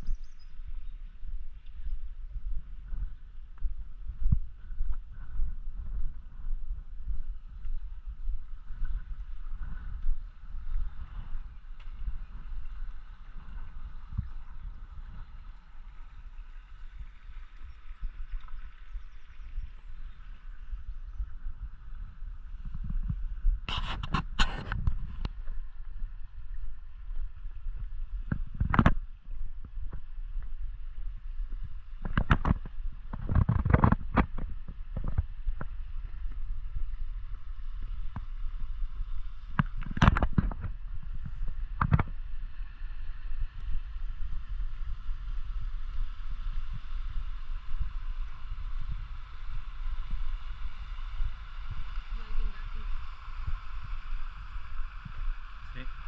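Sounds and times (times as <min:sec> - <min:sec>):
wind rumble on microphone: 0:00.0 - 0:56.0.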